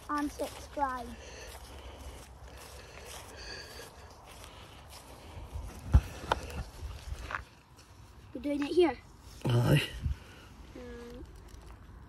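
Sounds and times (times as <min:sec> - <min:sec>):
footsteps: 0:00.0 - 0:09.5.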